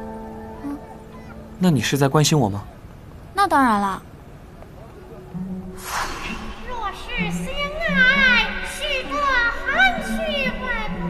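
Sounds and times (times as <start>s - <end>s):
background music: 0.0s - 1.8s, 5.1s - 11.0s
woman speaking high-pitched: 3.4s - 4.0s.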